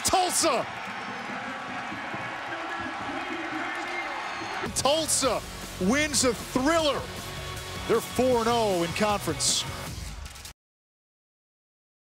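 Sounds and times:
stadium crowd cheering: 0.0s - 9.6s.

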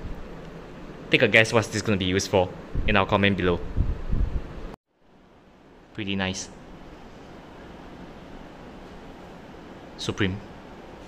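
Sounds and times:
faint room hiss: 0.0s - 11.0s
low rumbling on microphone: 2.6s - 4.8s.

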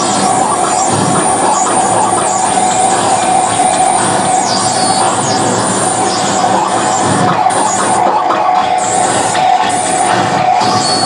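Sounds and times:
steady held tone: 0.0s - 11.0s
wall of distorted noise: 0.0s - 11.0s.

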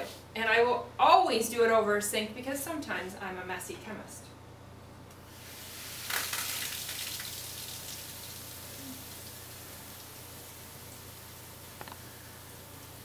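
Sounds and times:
chemicals fizzing in water: 5.3s - 11.8s.

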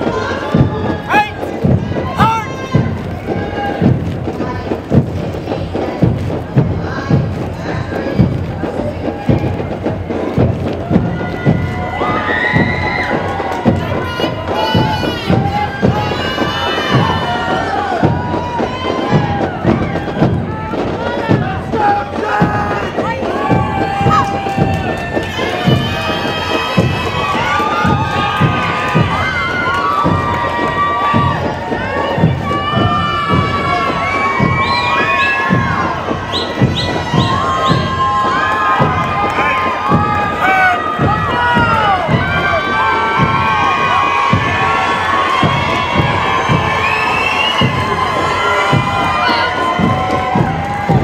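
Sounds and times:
crowd cheering and shouting: 0.0s - 51.0s.

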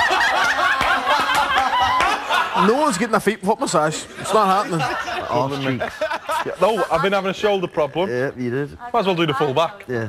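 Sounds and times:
group of people laughing: 0.0s - 3.1s, 4.0s - 7.2s.

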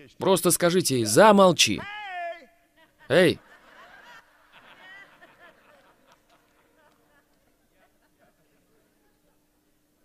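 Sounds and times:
faint audience laughter: 2.8s - 9.6s.

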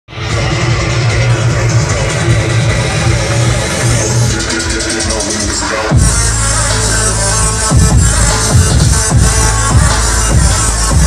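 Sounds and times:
electronic dance music: 0.1s - 11.0s.

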